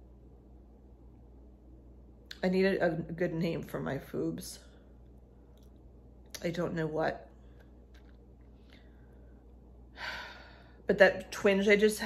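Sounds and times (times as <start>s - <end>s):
woman breathing: 8.5s - 10.9s.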